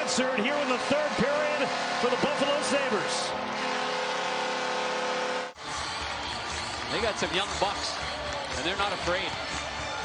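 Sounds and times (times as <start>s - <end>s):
arena goal horn: 0.0s - 5.6s
crowd cheering: 0.0s - 10.0s.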